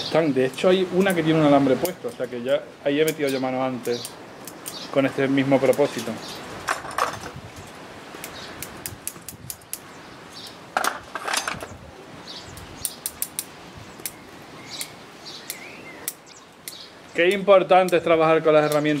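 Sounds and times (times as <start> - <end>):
scissors snipping twigs: 3.0 - 4.9, 5.5 - 6.2, 8.2 - 9.9, 12.5 - 14.2, 14.8 - 19.0
bird chirping: 3.1 - 5.1, 5.8 - 6.6, 7.4 - 8.6, 9.6 - 10.6, 11.6 - 13.2, 13.8 - 17.4.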